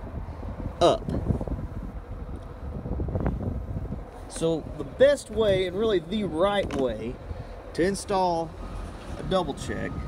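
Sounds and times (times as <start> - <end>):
wind buffeting the microphone: 0.0 - 10.0.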